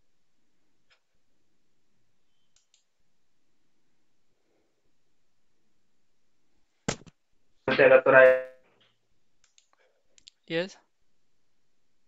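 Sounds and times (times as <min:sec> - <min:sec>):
computer mouse clicks: 0:02.5 - 0:02.9, 0:09.4 - 0:10.4.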